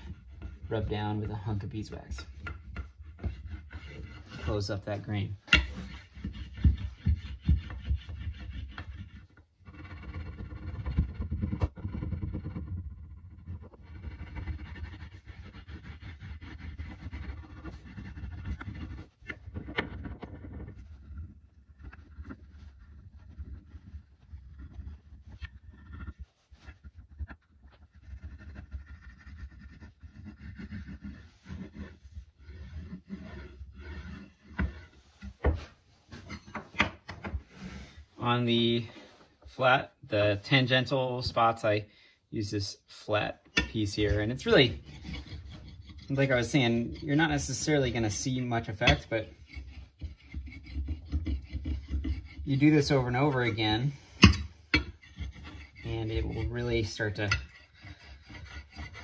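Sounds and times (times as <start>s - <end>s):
wax scrubbing on wooden handle: 0.0s - 36.7s, 42.4s - 59.0s.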